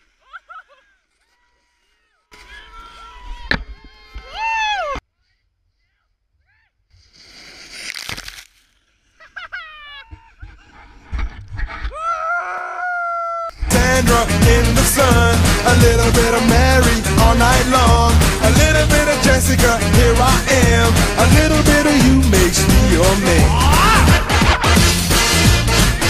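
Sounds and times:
snowboarders yelling: 0:00.7 - 0:05.0, 0:22.9 - 0:24.8
scraping snow: 0:07.0 - 0:09.4
music: 0:13.7 - 0:26.0.

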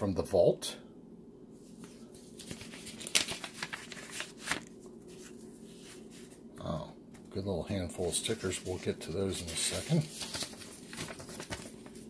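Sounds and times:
paper rustling and crinkling: 0:01.6 - 0:06.4, 0:08.0 - 0:12.0.

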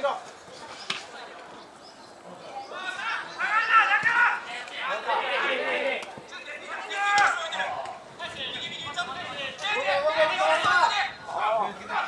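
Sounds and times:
low open-air background noise: 0:00.0 - 0:12.0.

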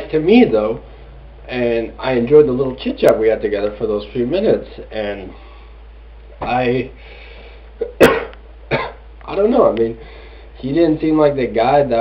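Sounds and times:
man coughing: 0:07.8 - 0:09.0.

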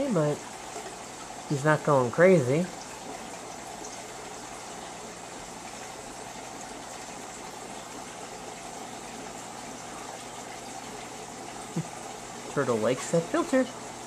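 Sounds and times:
aquarium filter water rushing: 0:00.0 - 0:14.0.

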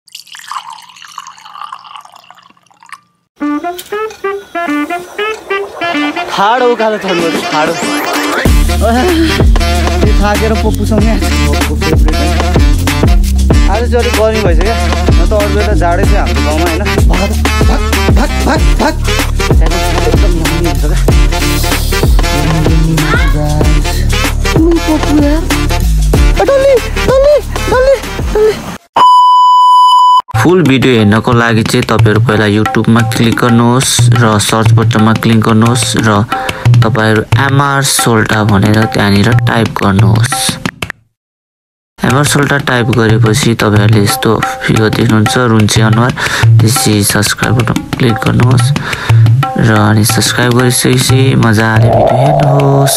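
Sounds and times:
sung music track: 0:03.4 - 0:28.4
high-pitched test-tone beep: 0:29.0 - 0:30.5.

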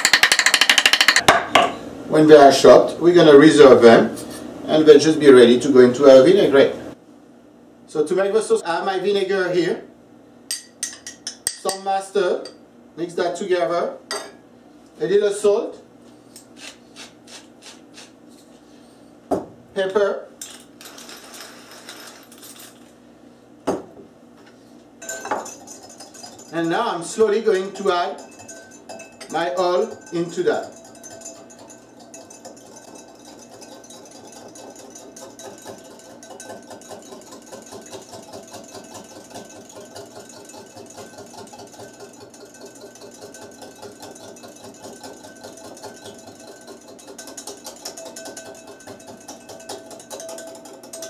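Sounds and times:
pepper mill grinding: 0:00.0 - 0:01.2, 0:16.4 - 0:18.5, 0:20.4 - 0:22.9, 0:25.0 - 0:51.0
whisk scraping glass bowl: 0:25.0 - 0:51.0.

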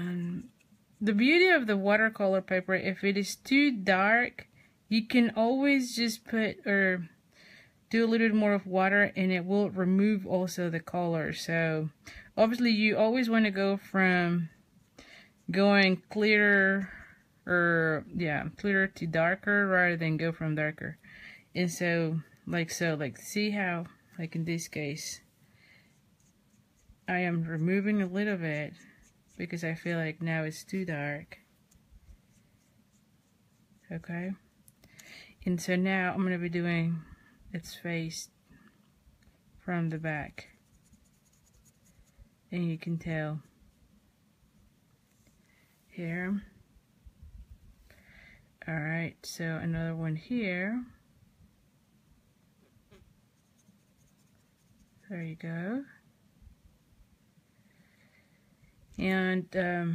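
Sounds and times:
brush scratching on paper: 0:25.8 - 0:31.0, 0:31.6 - 0:34.1, 0:40.4 - 0:42.3, 0:52.9 - 0:55.2.

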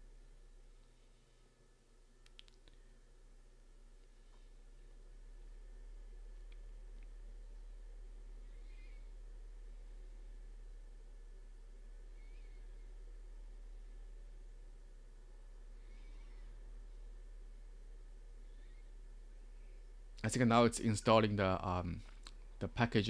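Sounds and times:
faint high whine: 0:00.0 - 0:23.0
low electrical hum: 0:00.0 - 0:23.0.

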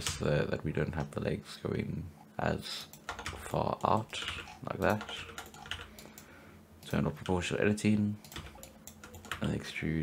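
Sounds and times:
keyboard keys clicking: 0:02.9 - 0:06.2, 0:08.2 - 0:09.6.

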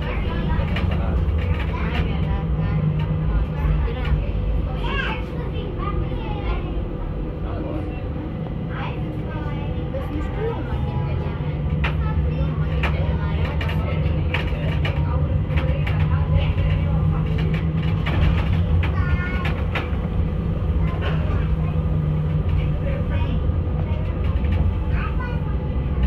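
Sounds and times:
low hum: 0:00.0 - 0:26.0
passengers' voices: 0:00.0 - 0:26.0
tram wheels rumbling on rails: 0:00.0 - 0:26.0.

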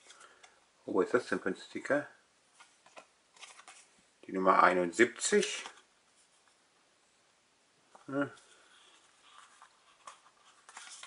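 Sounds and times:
paper stickers rustling: 0:09.2 - 0:11.0.

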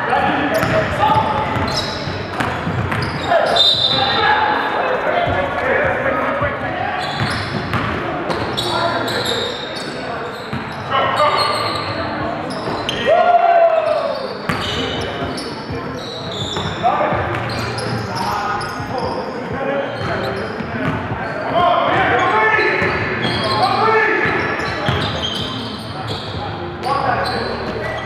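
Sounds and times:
echoing voices: 0:00.0 - 0:28.0.

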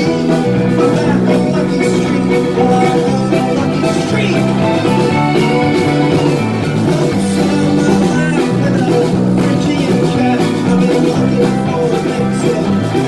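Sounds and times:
drums: 0:00.0 - 0:13.0
electric guitar: 0:00.0 - 0:13.0.

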